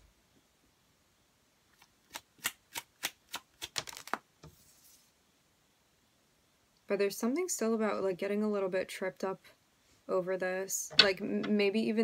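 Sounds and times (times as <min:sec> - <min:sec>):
cards snapping while shuffled: 0:02.1 - 0:04.2
soft card rustle: 0:02.8 - 0:05.1.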